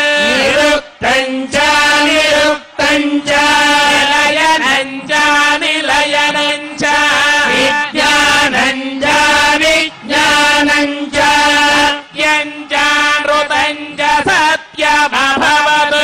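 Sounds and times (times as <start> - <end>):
man chanting mantras: 0.0 - 16.0.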